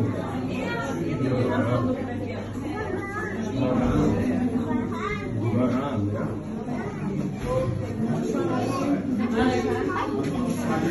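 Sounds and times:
people chattering: 0.0 - 10.9.

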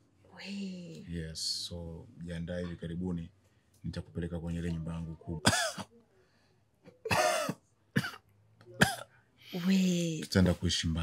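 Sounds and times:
man coughing: 5.4 - 5.9, 7.0 - 8.2, 8.8 - 9.1.

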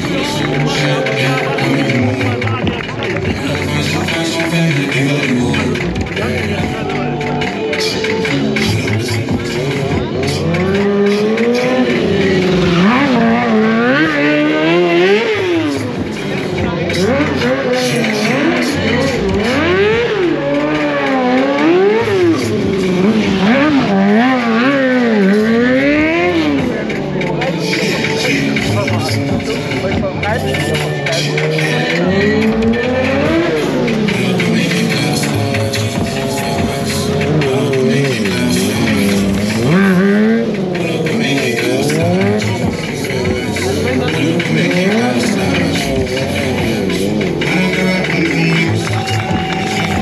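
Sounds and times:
motorcycle engine revving: 0.0 - 50.0.

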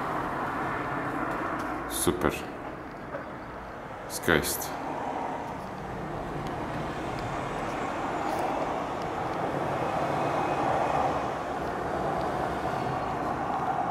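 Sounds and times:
distant town traffic: 0.0 - 13.9.

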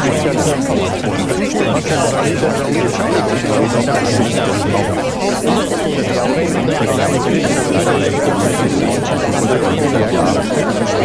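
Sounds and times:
babble of many voices: 0.0 - 11.0.

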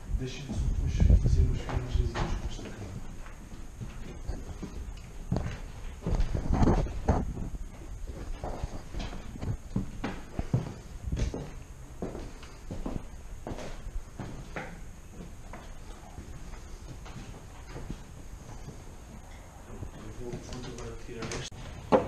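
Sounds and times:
footsteps on wooden floorboards: 1.4 - 22.0.

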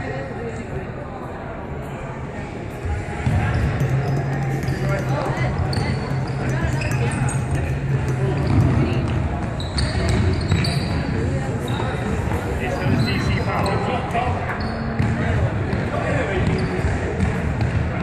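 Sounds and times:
sports shoes squeaking: 3.2 - 17.4.

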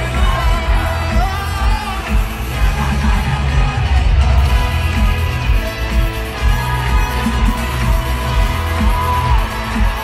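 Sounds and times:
crowd yelling: 0.0 - 10.0
male singer: 0.0 - 10.0
pop band playing: 0.0 - 10.0.

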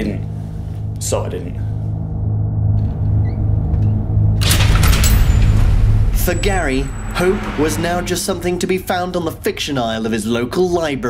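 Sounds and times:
low rumbling soundtrack drone: 0.0 - 10.8.

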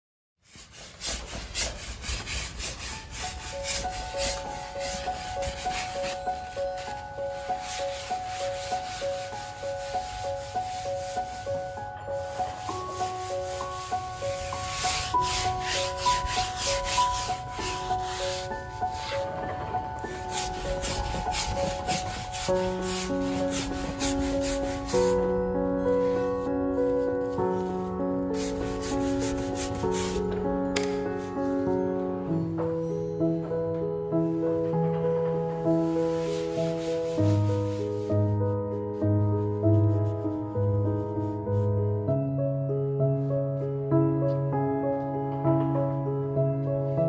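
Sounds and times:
brush scrubbing paint on canvas: 0.4 - 25.3, 28.4 - 30.2, 35.8 - 41.4
soft background music: 0.4 - 47.0.

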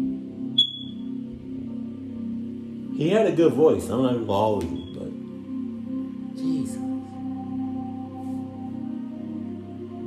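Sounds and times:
ambient music with low tones: 0.0 - 10.0
smoke alarm chirping: 0.6 - 1.0.

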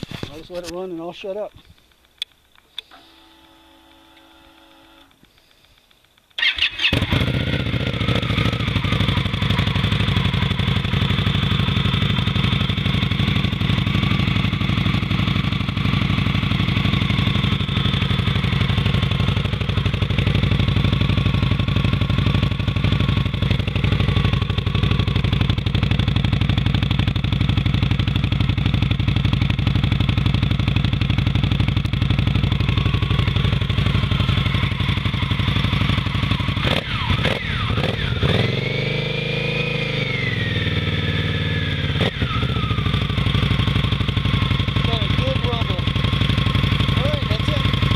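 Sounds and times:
motorcycle engine starting and idling: 0.0 - 47.9.

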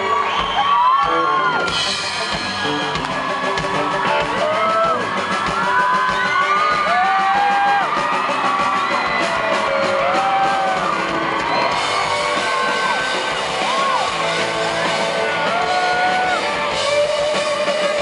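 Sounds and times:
crowd whooping and cheering: 0.0 - 18.0
live rock band: 0.0 - 18.0
bending lead melody: 1.1 - 18.0.

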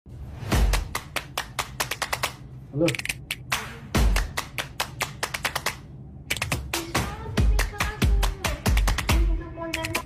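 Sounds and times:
rapid sharp clicks: 4.2 - 6.8.

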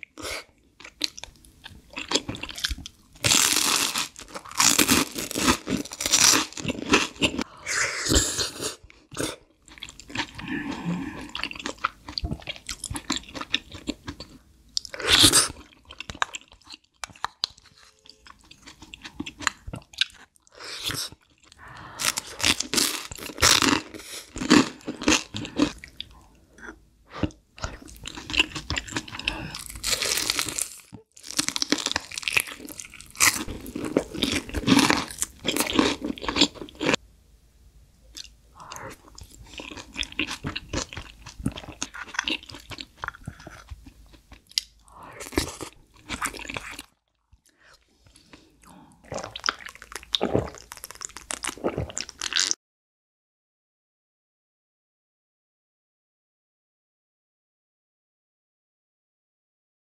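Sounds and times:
person chewing food: 0.0 - 7.5, 8.1 - 37.0, 38.1 - 52.6.

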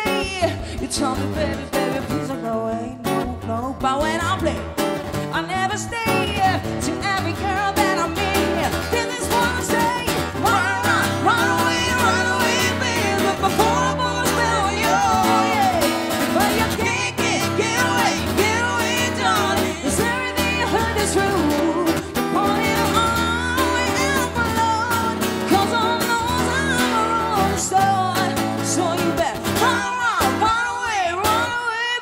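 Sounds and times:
woman singing: 0.0 - 32.0
acoustic guitar strumming chords: 4.0 - 30.6
man singing along: 5.4 - 32.0.

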